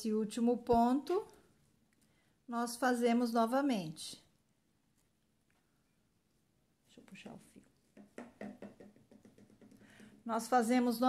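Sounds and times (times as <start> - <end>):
soft taps and rustles of yarn: 7.0 - 10.3.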